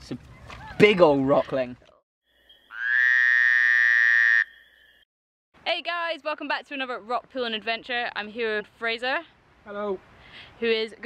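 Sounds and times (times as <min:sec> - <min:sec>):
buzzy frog croak: 0:02.7 - 0:04.6.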